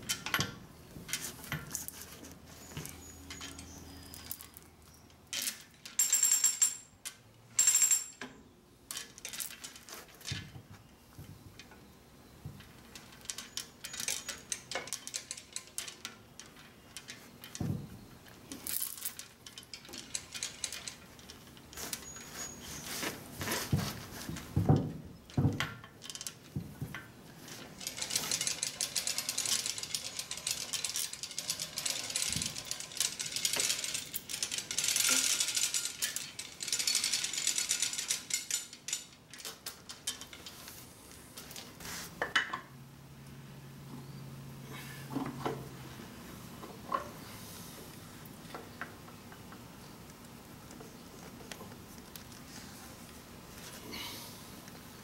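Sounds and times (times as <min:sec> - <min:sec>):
chain rattling through hoist: 0:05.3 - 0:06.9, 0:12.9 - 0:17.6, 0:18.6 - 0:22.9, 0:27.7 - 0:40.5.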